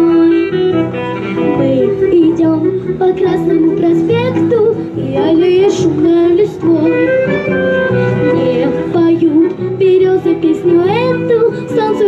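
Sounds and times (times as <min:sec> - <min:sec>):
child singing into a microphone: 0:00.0 - 0:00.6, 0:01.4 - 0:07.2, 0:08.2 - 0:12.0
backing track: 0:00.0 - 0:12.0.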